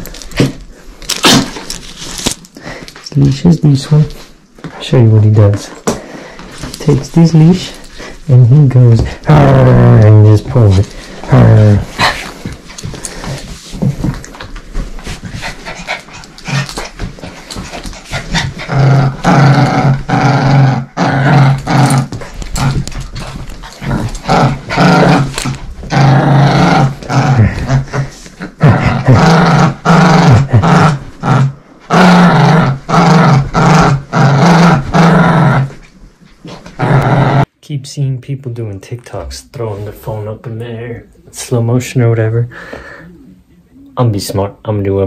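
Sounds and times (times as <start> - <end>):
small dog growling: 18.0 - 35.8.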